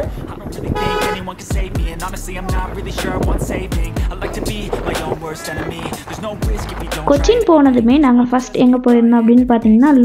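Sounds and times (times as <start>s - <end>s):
background music with low beat: 0.0s - 10.0s
vehicle horn toot: 0.7s - 1.3s.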